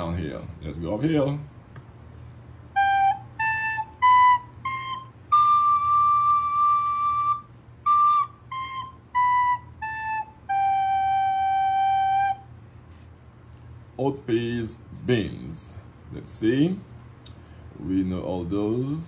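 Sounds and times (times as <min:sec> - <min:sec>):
recorder playing scale: 0:02.7 - 0:12.6.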